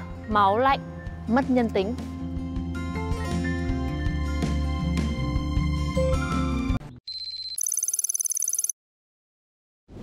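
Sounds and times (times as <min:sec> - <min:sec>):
electronic ringing tone: 0:07.1 - 0:08.8.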